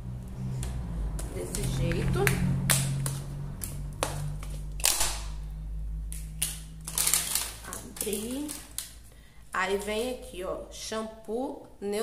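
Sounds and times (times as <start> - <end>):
steady low hum: 0.0 - 11.8
packaging crinkling: 6.2 - 9.1.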